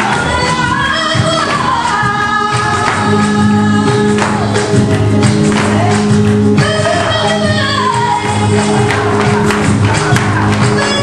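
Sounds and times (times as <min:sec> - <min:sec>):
flamenco music with singing: 0:00.0 - 0:11.0.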